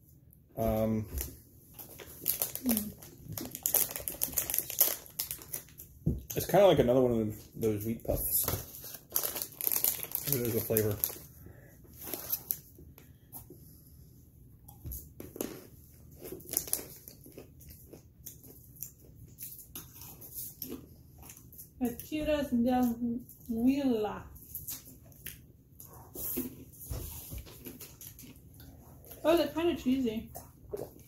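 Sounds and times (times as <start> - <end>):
plastic snack bag rustling: 1.2 - 6.6, 8.1 - 11.3, 15.4 - 17.5
crunchy snack being eaten: 15.3 - 21.5.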